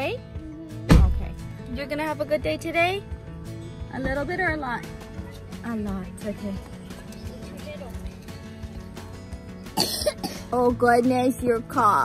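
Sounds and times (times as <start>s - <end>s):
quiet background music: 0.0s - 12.0s
toddler coughing: 9.8s - 10.6s.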